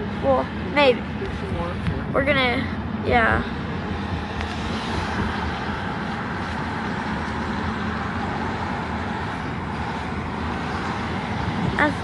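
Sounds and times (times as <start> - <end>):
car driving on wet pavement: 0.0 - 12.0.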